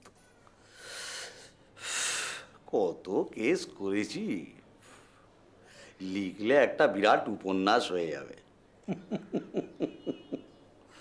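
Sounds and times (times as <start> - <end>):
man speaking: 2.7 - 4.6, 6.0 - 8.4.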